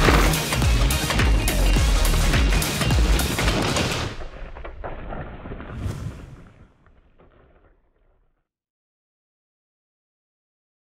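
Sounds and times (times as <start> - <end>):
soundtrack music with heavy drums: 0.0 - 4.1.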